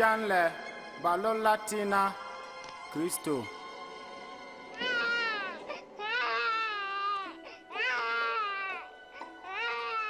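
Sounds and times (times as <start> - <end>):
baby crying: 4.7 - 10.0.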